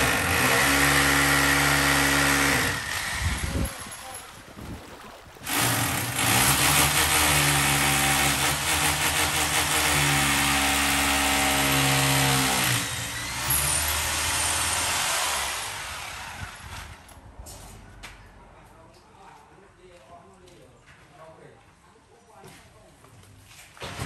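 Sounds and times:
rotary hammer drilling masonry: 0.0 - 4.2, 5.4 - 17.1.

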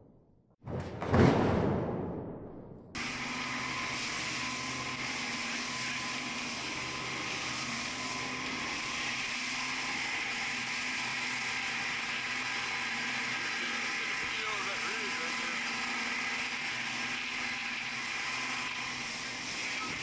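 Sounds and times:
outboard motor running: 3.7 - 20.0.

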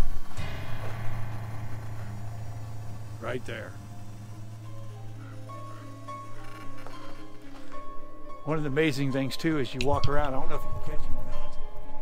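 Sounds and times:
steady low hum: 0.0 - 8.8.

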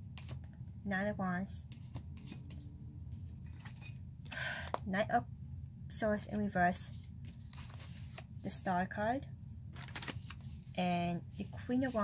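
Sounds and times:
low steady hum: 0.0 - 12.0
cards clicking and rustling: 0.1 - 0.6, 3.4 - 4.8, 7.2 - 8.3, 9.8 - 10.5.

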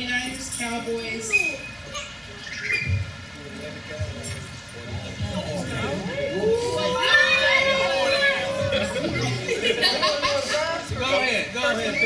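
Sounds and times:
children shouting excitedly: 6.2 - 9.4.

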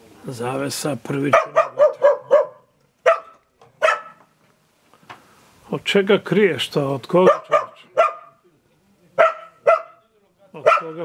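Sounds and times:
dog barking: 1.3 - 4.3, 7.2 - 8.4, 9.2 - 10.0, 10.6 - 11.0.

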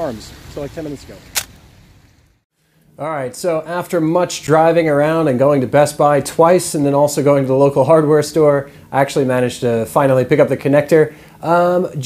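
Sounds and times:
man speaking: 0.0 - 1.3, 3.0 - 12.0.

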